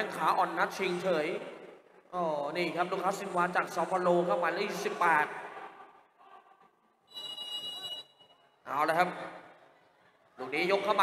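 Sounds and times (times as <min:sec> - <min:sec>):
referee's whistle blast: 0:07.1 - 0:08.3.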